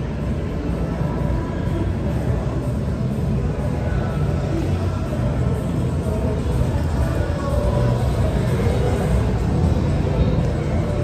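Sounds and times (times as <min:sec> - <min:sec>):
faint background music: 0:00.0 - 0:11.0
low rumble of open hall: 0:00.0 - 0:11.0.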